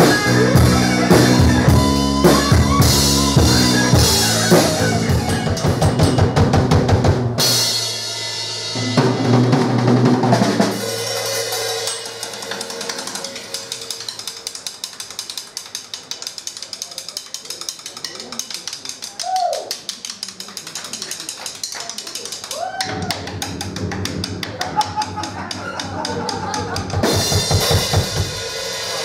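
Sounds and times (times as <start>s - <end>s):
bass-heavy band sound: 0.0s - 15.0s, 22.5s - 29.0s
rock drum kit playing: 0.0s - 16.0s, 22.7s - 29.0s.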